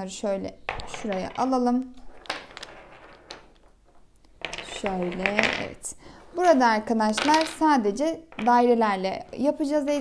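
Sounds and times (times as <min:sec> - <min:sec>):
wooden pieces clacking on board: 0:00.7 - 0:05.8, 0:07.0 - 0:07.7, 0:08.3 - 0:08.7
wooden pieces sliding: 0:00.7 - 0:06.4.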